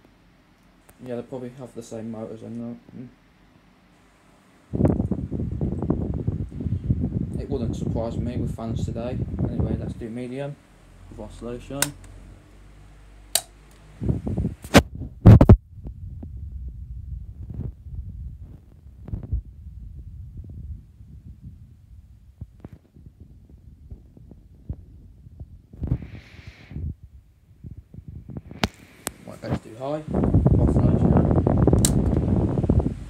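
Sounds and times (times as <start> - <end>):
fan airflow buffeting microphone: 0.8 - 3.2, 3.9 - 33.0
fan switches clicking: 11.6 - 12.2, 13.3 - 13.9, 31.7 - 32.3.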